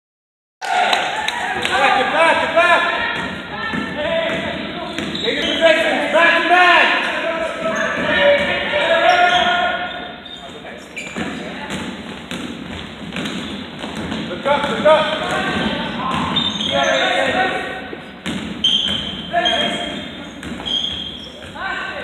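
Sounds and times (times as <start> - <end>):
players shouting: 0.6 - 10.2, 14.3 - 17.9
basketball bouncing: 2.9 - 5.3, 11.0 - 16.7, 18.2 - 21.6
basketball shoes squeaking: 3.1 - 5.9, 7.6 - 22.0.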